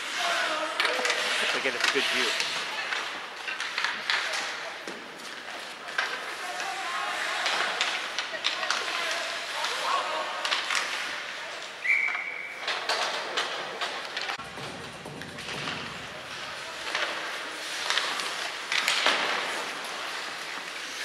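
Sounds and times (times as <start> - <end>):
hockey sticks and puck clacking: 0.0 - 21.0
skates on ice: 0.0 - 21.0
whistle: 11.8 - 12.6.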